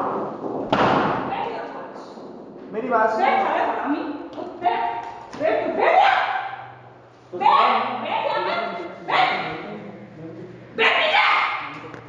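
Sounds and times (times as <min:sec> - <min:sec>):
loud thump: 0:00.0 - 0:03.0
people arguing and shouting: 0:01.1 - 0:12.0.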